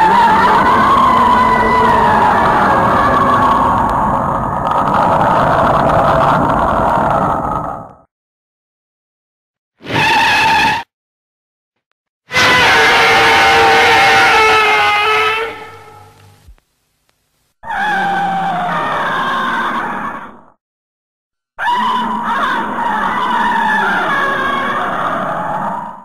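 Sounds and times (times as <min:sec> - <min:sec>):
monster roar: 0:00.0 - 0:08.0.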